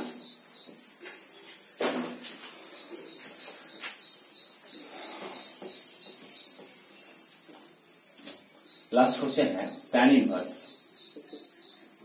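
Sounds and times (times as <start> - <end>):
cricket chirring: 0.0 - 12.0.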